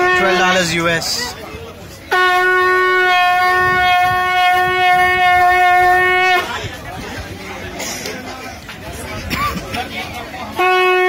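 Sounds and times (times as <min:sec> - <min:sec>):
conch shell blown in long note: 0:00.0 - 0:00.6, 0:02.1 - 0:06.5, 0:10.5 - 0:11.0
street chatter: 0:00.0 - 0:11.0.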